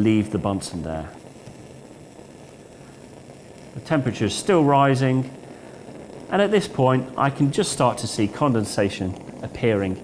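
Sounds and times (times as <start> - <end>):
bunsen burner rushing: 0.0 - 10.0.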